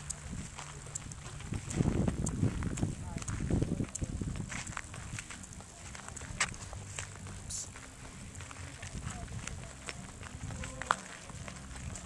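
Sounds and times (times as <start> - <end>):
faint voices: 0.0 - 12.0
footsteps on grassy ground: 0.0 - 12.0.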